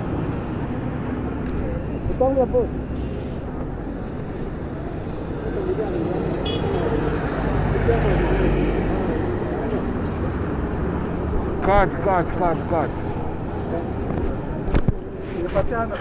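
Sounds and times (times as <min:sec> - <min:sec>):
vehicles rumbling past: 0:00.0 - 0:16.0
man speaking: 0:11.6 - 0:13.0.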